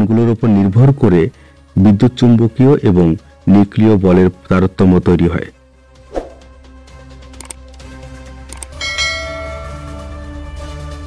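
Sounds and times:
low background music: 0:00.0 - 0:11.0
electronic bell chime: 0:08.8 - 0:10.2.

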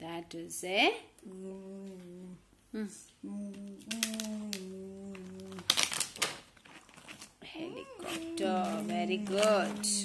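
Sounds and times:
woman humming: 0:01.2 - 0:05.7, 0:07.6 - 0:10.0.

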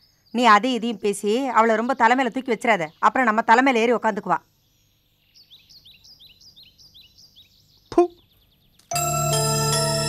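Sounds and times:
bird chirping: 0:00.0 - 0:09.5.

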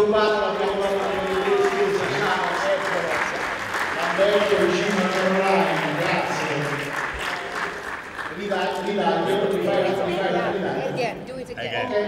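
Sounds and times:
audience applauding: 0:00.0 - 0:10.6
person talking: 0:08.4 - 0:12.0.

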